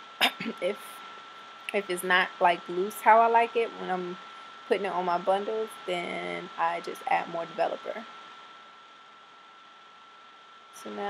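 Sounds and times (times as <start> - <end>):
faint high-pitched whine: 0.0 - 11.0
steady hiss: 0.0 - 11.0.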